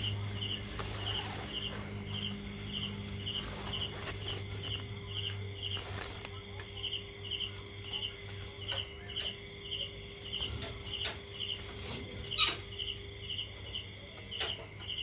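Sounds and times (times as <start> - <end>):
insect chirping: 0.0 - 15.0.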